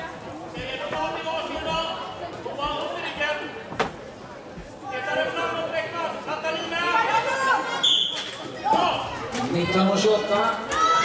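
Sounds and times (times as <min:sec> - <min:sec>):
voices echoing in sports hall: 0:00.0 - 0:11.0
shrill referee whistle blast: 0:07.8 - 0:08.2.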